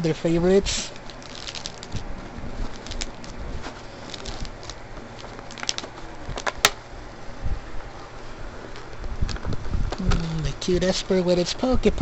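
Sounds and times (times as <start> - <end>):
soft rustles of cards: 0.7 - 6.5.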